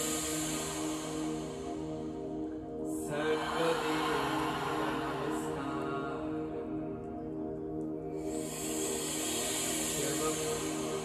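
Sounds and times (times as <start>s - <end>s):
long hissing breath: 0.0s - 5.9s, 8.1s - 11.0s
slow ambient music: 0.0s - 11.0s.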